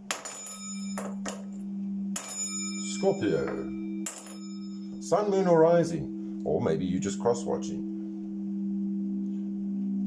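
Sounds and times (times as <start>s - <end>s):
singing bowl ringing: 0.0s - 10.0s
steady low hum: 0.0s - 10.0s.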